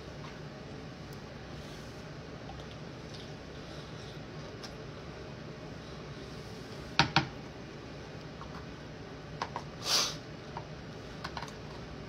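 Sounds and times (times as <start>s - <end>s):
short hiss: 9.8s - 10.2s.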